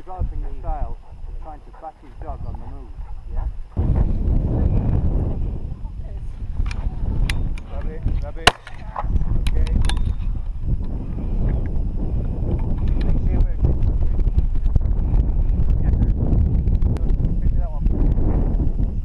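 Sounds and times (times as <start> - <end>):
wind buffeting microphone: 0.0 - 19.0
sharp crack: 8.4 - 10.0.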